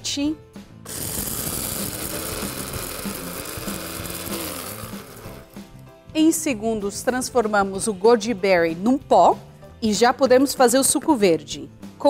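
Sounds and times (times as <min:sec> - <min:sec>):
blender motor whirring: 0:00.9 - 0:05.8.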